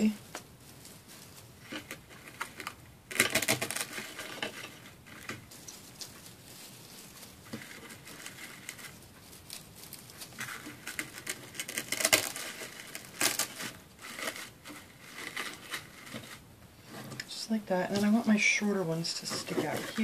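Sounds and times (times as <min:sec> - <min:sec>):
artificial pine picks rustling: 0:00.0 - 0:20.0.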